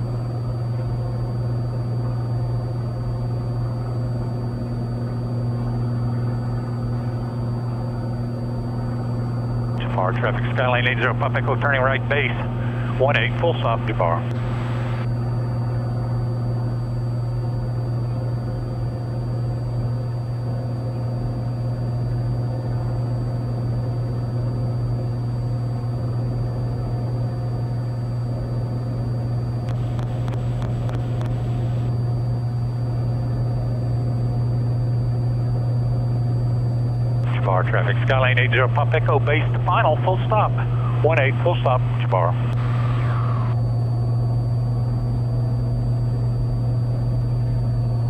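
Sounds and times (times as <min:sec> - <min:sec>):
aircraft engine and propeller drone: 0:00.0 - 0:48.0.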